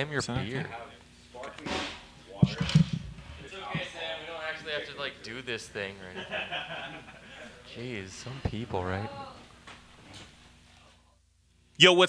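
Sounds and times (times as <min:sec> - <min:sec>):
man talking: 0:07.5 - 0:09.4.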